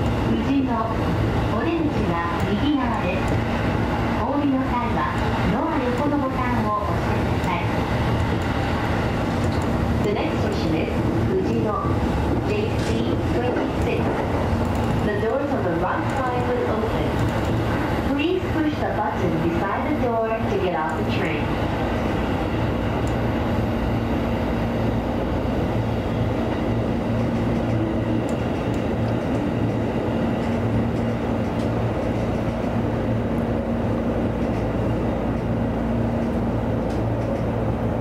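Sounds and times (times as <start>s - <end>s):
electric train running on rails: 0.0s - 38.0s.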